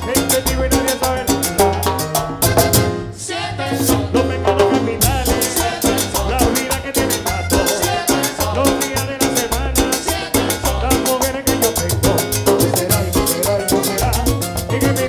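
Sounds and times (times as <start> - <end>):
accordion: 0.0 - 15.0
tropical dance band playing: 0.0 - 15.0.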